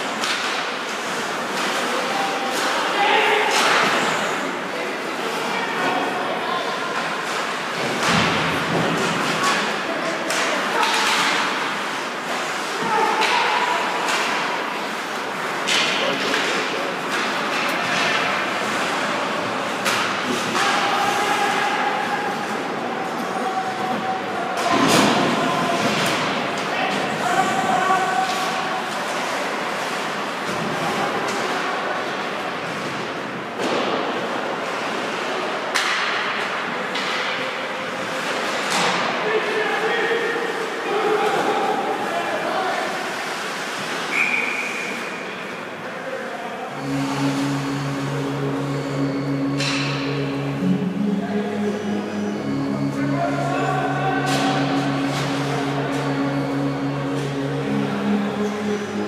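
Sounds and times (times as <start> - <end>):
pucks and players hitting boards: 0.1 - 2.8, 7.0 - 31.7, 32.6 - 37.5, 38.2 - 39.2
players shouting: 20.4 - 26.2.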